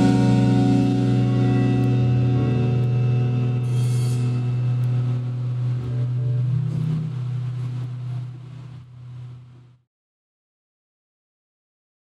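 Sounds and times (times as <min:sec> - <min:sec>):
cymbal crash: 0:00.0 - 0:08.2
electric guitar chord: 0:00.0 - 0:08.8
electric bass note: 0:00.0 - 0:09.7.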